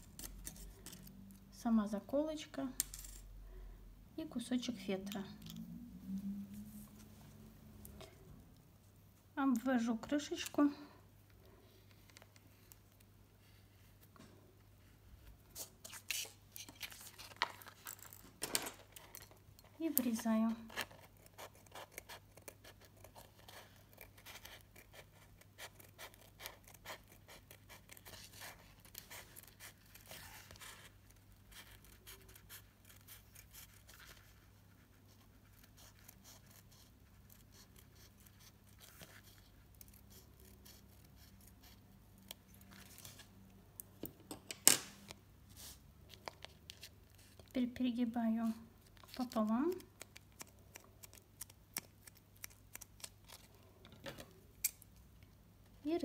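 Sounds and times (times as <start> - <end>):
scissors snipping foam: 49.1 - 53.5.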